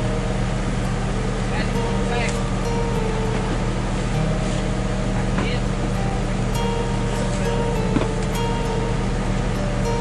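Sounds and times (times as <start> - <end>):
truck motor running: 0.0 - 10.0.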